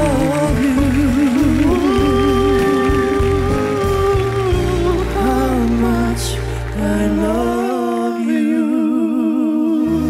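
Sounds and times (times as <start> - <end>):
bass guitar: 0.0 - 7.7.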